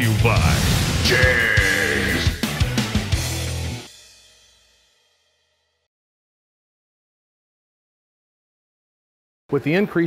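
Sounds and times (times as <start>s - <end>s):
logo jingle music: 0.0s - 4.5s.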